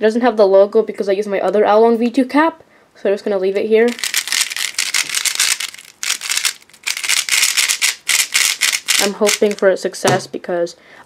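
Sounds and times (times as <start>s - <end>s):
puzzle cube layers clicking: 3.9s - 9.6s.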